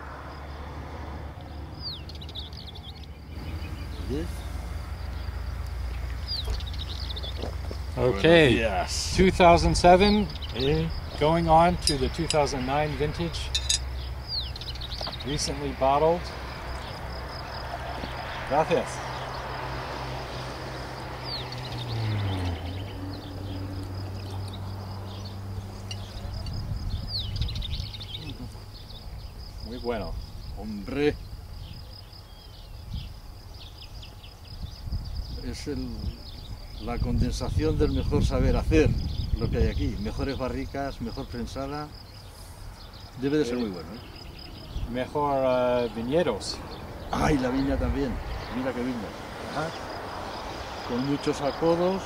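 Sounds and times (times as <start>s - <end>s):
small bird singing: 1.3s - 19.6s, 20.3s - 52.0s
high-pitched insect chirring: 9.7s - 15.4s, 20.8s - 30.6s.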